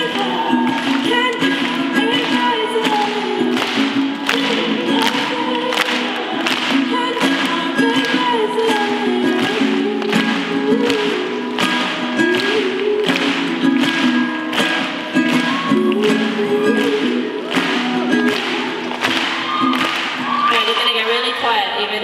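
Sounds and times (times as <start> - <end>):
person singing wordlessly: 0.0 - 14.3, 15.1 - 18.7
ukulele playing: 0.0 - 20.5.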